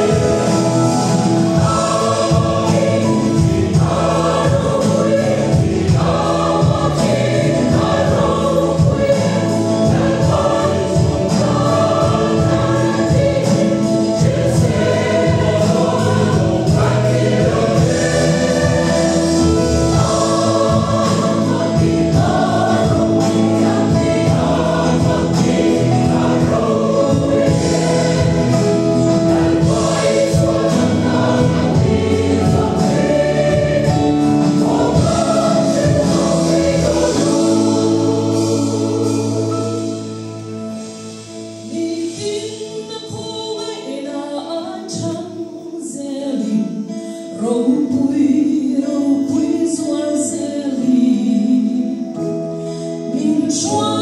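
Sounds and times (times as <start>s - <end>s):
mixed choir singing a hymn: 0.0s - 54.0s.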